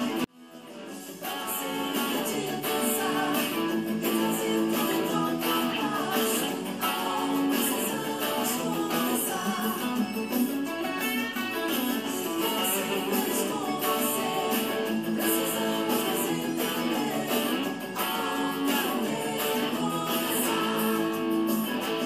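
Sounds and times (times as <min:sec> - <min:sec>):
electric guitar power chords: 0:00.0 - 0:22.0.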